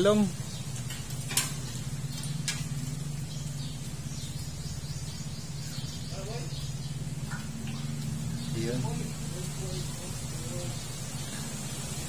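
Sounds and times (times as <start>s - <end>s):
steady low hum: 0.0s - 12.0s
faint bird chirps: 1.7s - 12.0s.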